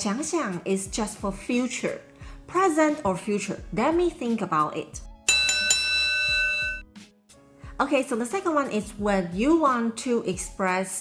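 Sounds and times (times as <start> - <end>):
boxing bell ringing: 5.3 - 6.8.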